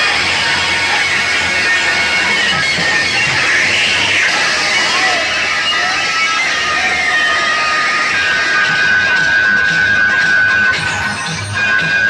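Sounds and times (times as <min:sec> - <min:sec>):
long high held tone: 0:00.0 - 0:11.2
loud music from speakers: 0:00.0 - 0:12.0
pulsing bass: 0:00.0 - 0:12.0.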